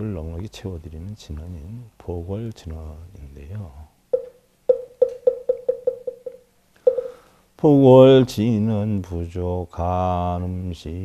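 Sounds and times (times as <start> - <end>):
wooden knocks accelerating: 4.7 - 7.1.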